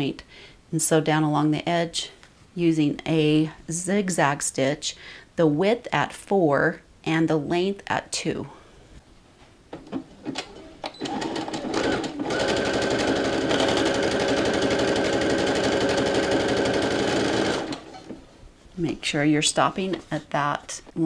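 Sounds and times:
sewing machine running: 0:10.9 - 0:18.1.

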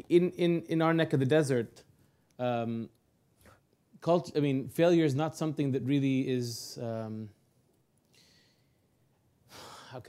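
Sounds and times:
man speaking: 0:00.0 - 0:03.0, 0:04.0 - 0:07.4.

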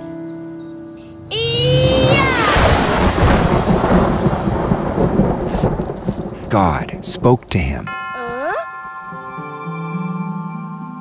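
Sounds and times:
falling pitched glide: 0:01.2 - 0:05.5
rumbling thunderclap: 0:01.3 - 0:07.9
rain: 0:01.6 - 0:07.9.

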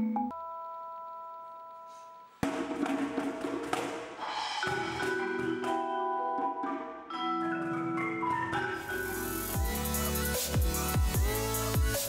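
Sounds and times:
sharp drum strikes: 0:02.4 - 0:05.2
percussion ensemble playing: 0:02.4 - 0:12.0
vibraphone notes: 0:04.4 - 0:10.7.

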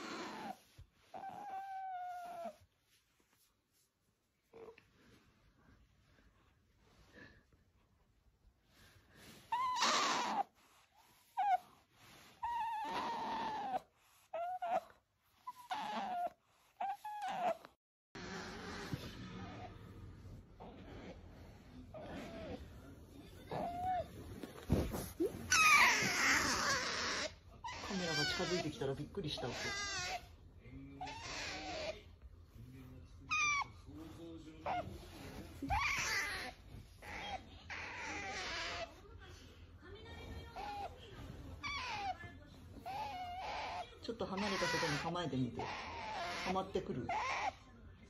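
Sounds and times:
otter high squeaks: 0:23.5 - 0:28.7.

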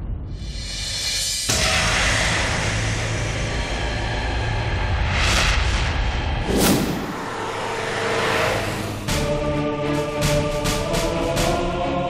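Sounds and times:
low rumbling drone: 0:00.0 - 0:10.4
whooshes: 0:04.8 - 0:09.4.

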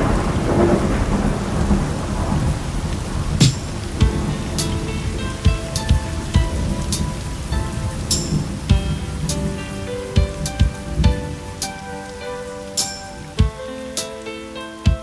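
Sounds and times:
thunder rumble: 0:00.0 - 0:13.9
rain drops clicking: 0:00.0 - 0:15.0
slow r and b keyboard music: 0:03.4 - 0:15.0.

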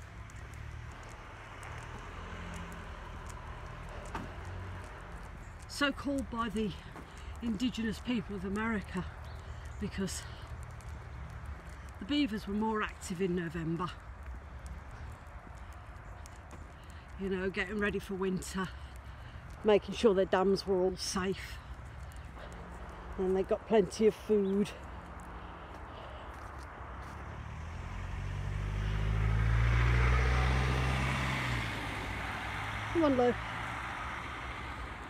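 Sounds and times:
car driving past on wet road: 0:00.0 - 0:05.7, 0:26.8 - 0:35.0
footsteps on wet tarmac: 0:00.0 - 0:35.0.

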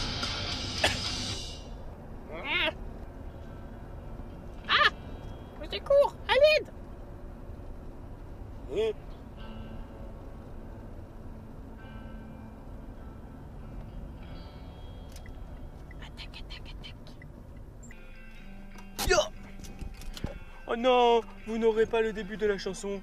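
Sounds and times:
car road and engine rumble: 0:00.0 - 0:23.0.

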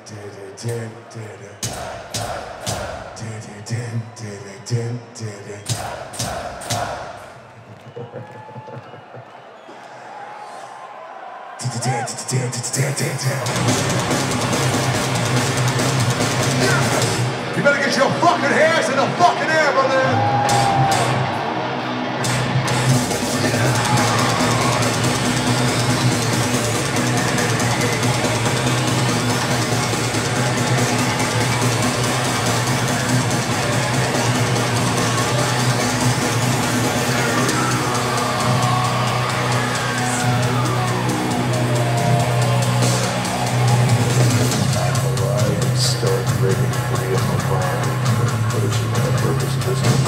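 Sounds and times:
heavy metal band playing live: 0:13.4 - 0:21.3, 0:22.0 - 0:50.0.

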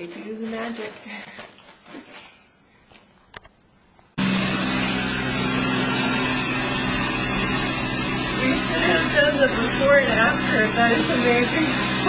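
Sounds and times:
carpet cleaning machine motor: 0:04.2 - 0:12.0.

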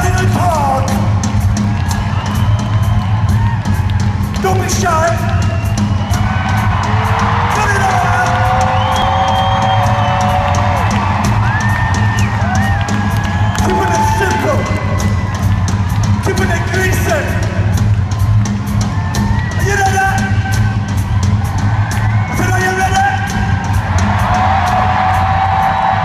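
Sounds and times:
audience whoops and yells: 0:00.0 - 0:26.0
rock drum solo: 0:00.0 - 0:26.0.

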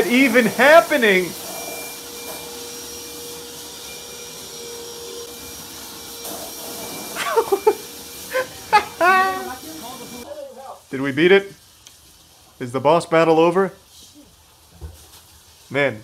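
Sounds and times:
shop vacuum whining: 0:00.0 - 0:10.3
water spraying: 0:00.0 - 0:16.0
voices: 0:08.3 - 0:11.5.

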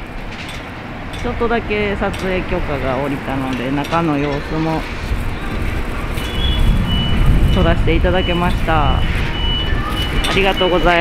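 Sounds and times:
low outdoor rumble: 0:00.0 - 0:11.0
person speaking: 0:01.2 - 0:05.0.

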